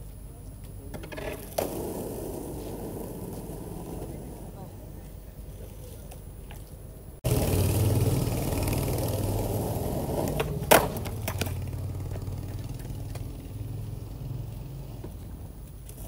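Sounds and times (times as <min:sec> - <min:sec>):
skateboard wheels rolling on asphalt: 0:00.0 - 0:16.0
skateboard clack: 0:00.9 - 0:05.2, 0:08.6 - 0:13.4.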